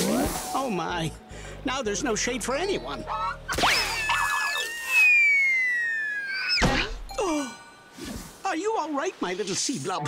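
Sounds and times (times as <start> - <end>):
cartoon squeak: 3.1 - 7.0.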